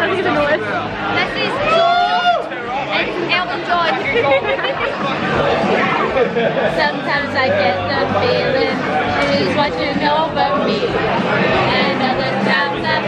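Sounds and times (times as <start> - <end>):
people chattering loudly: 0.0 - 13.0.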